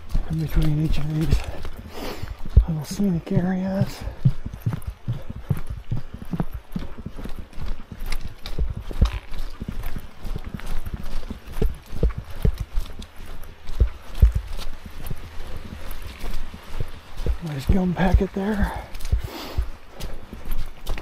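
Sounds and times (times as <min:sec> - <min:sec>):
footsteps on leafy dirt trail: 0:00.0 - 0:21.0
footsteps on wooden boardwalk: 0:00.0 - 0:21.0.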